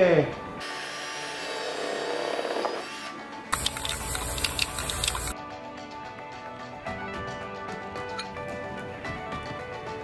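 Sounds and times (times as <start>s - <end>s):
background music: 0.0s - 10.0s
cordless drill cutting metal: 0.6s - 3.9s.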